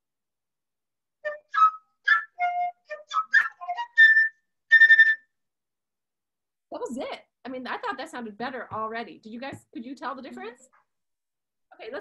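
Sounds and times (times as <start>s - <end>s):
solo flute: 1.2s - 5.4s.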